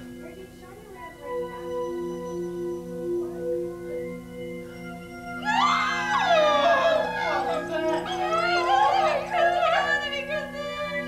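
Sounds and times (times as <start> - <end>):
high wailing cry: 5.4 - 11.0.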